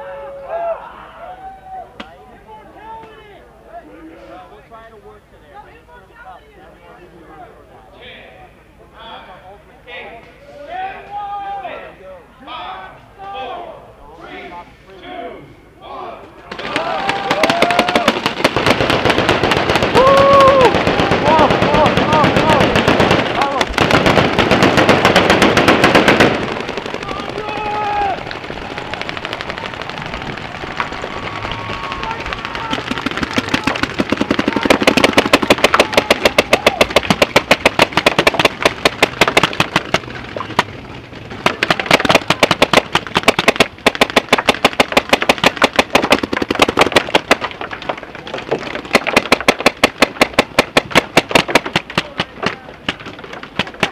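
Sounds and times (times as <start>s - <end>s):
players shouting: 10.6s - 18.4s, 19.8s - 23.8s, 26.4s - 37.3s
paintball markers firing: 16.5s - 53.9s.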